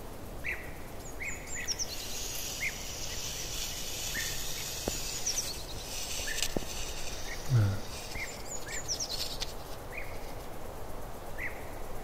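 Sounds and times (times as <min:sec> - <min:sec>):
low steady background: 0:00.0 - 0:12.0
soft hissing rustle: 0:00.0 - 0:12.0
small birds chirping: 0:00.5 - 0:10.5.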